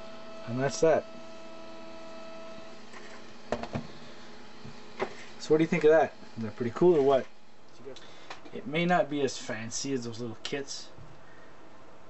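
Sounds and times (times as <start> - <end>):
electrical hum with thin tones: 0.0 - 12.0
transmitter set down on workbench: 3.5 - 3.9.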